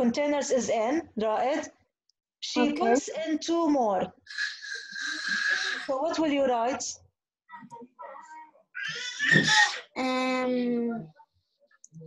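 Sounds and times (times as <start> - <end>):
voices: 2.4 - 12.0.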